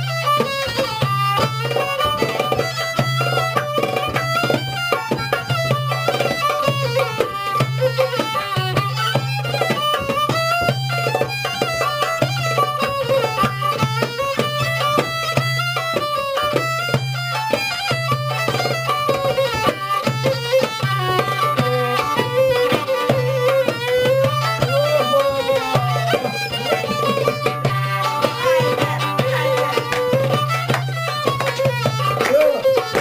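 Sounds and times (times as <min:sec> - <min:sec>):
fiddle folk melody: 0:00.0 - 0:33.0
hand drum beats: 0:00.0 - 0:33.0.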